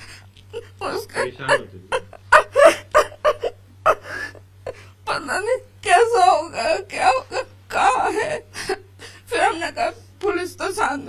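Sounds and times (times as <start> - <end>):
woman sobbing and wailing: 0.0 - 11.0.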